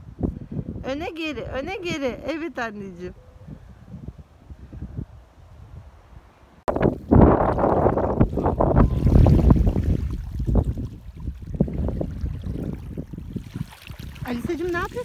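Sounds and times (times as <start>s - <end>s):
wind buffeting microphone: 0.0s - 15.0s
waves lapping pebbly shore: 13.4s - 15.0s.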